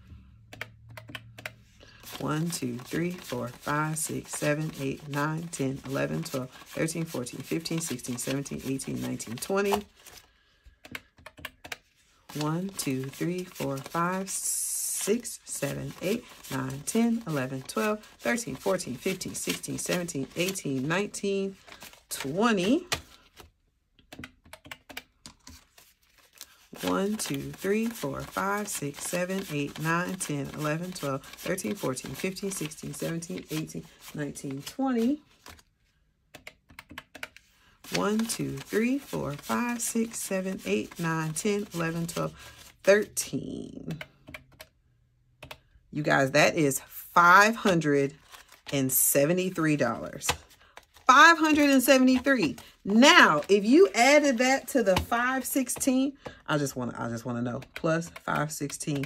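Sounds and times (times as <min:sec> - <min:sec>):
calculator keys clicking: 0:00.4 - 0:01.6, 0:10.8 - 0:13.9, 0:24.0 - 0:25.6, 0:43.9 - 0:44.8
paper bills clicking and tapping: 0:00.4 - 0:35.7, 0:36.4 - 0:43.2, 0:47.5 - 0:56.5, 0:57.1 - 0:59.0.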